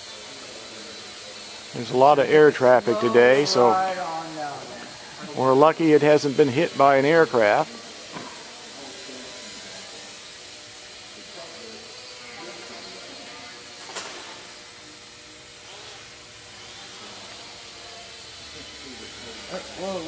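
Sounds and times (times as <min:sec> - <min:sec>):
quadcopter motors buzzing: 0:00.0 - 0:20.0.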